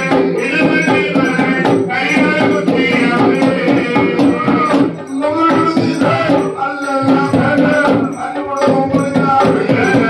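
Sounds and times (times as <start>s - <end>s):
drums beating: 0.0s - 10.0s
men singing a devotional song: 0.0s - 10.0s
sharp rattling percussion: 0.0s - 10.0s.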